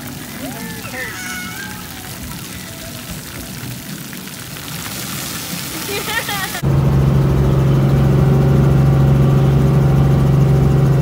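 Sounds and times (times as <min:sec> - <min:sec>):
fountain jets spraying water: 0:00.0 - 0:06.6
water pattering on wet ground: 0:00.0 - 0:06.6.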